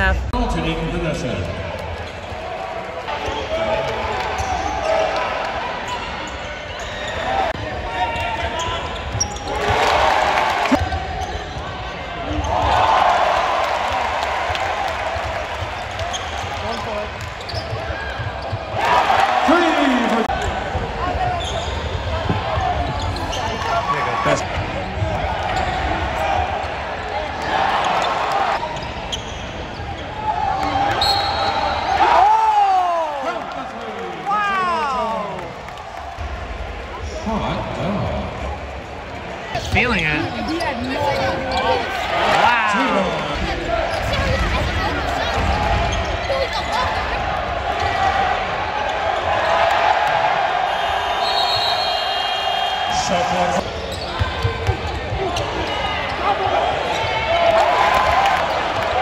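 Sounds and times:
crowd noise swells: 0.0 - 59.0
murmur of crowd voices: 0.0 - 59.0.

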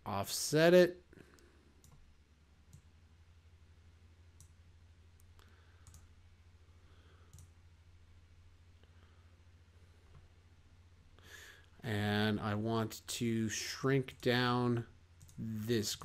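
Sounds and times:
low steady hum: 0.0 - 16.0
computer mouse clicks: 1.4 - 2.1, 2.7 - 2.9, 4.4 - 4.6, 5.2 - 6.1, 7.3 - 7.6, 15.2 - 15.4.

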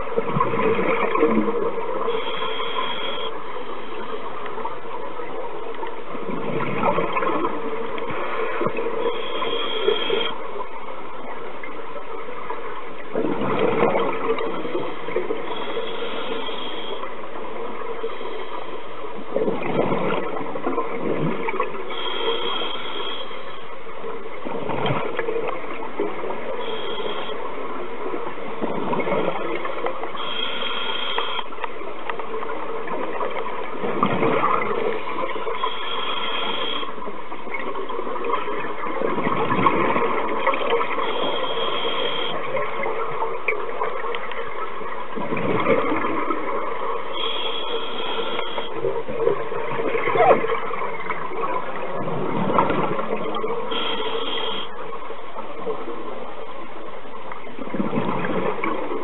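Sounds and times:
exhaust bubbles bursting: 0.2 - 1.8, 37.6 - 41.0, 45.2 - 46.6, 49.1 - 53.9
regulator hiss on inhale: 2.1 - 4.3, 9.0 - 10.4, 14.6 - 17.2, 18.0 - 19.1, 21.9 - 23.8, 26.6 - 27.5, 30.2 - 31.6, 35.6 - 37.0, 41.0 - 42.4, 47.1 - 48.8, 53.7 - 54.8.

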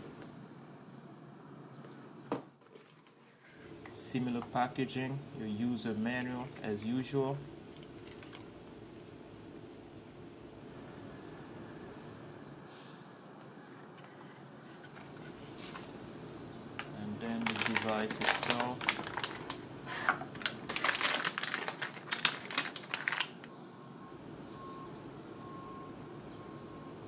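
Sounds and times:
cardboard and packaging rustling: 2.6 - 3.8, 7.6 - 8.6, 13.7 - 23.5.

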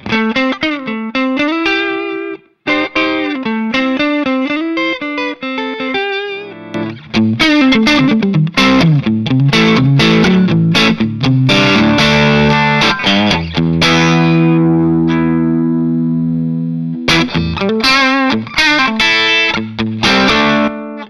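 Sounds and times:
electric guitar chords and riffs: 0.0 - 21.0.

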